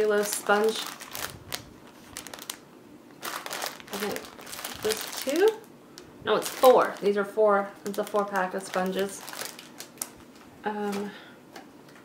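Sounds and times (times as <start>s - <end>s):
packaging crinkling: 0.0s - 11.1s.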